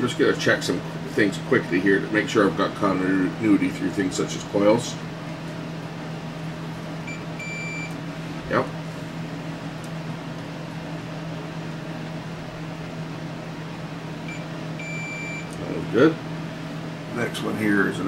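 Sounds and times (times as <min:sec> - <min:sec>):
steady low hum: 0:00.0 - 0:18.0
multimeter continuity beeping: 0:07.1 - 0:08.0, 0:14.3 - 0:15.6.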